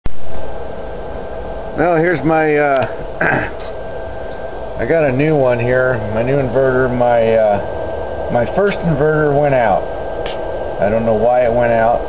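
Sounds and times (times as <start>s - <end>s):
faint steady whine: 0.0s - 12.0s
power inverters humming: 0.1s - 12.0s
small cooling fan: 0.1s - 12.0s.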